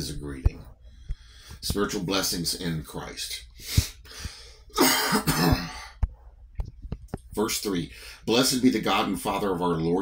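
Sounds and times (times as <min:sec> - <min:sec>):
man coughing and clearing throat: 0:04.7 - 0:06.0.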